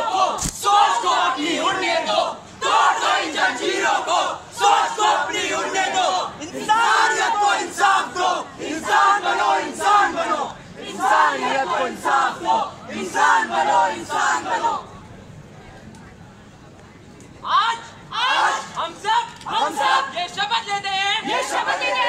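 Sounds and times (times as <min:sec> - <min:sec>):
performers shouting together: 0:17.5 - 0:18.8.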